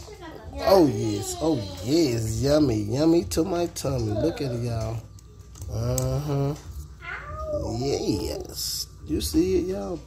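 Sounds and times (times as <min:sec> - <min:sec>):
man humming: 0:05.7 - 0:06.7.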